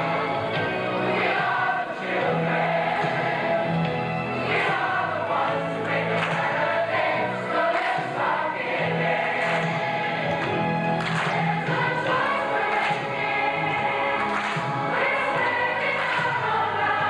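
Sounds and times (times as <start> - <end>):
mixed choir singing: 0.0 - 17.0.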